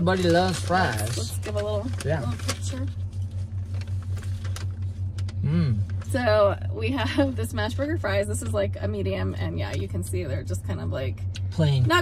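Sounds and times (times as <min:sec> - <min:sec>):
car engine hum inside cabin: 0:00.0 - 0:12.0
faint clicks and rustles: 0:00.1 - 0:06.2.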